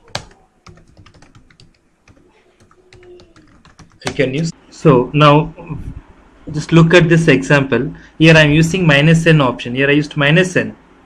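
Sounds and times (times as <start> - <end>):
keyboard typing: 0.0 - 4.5.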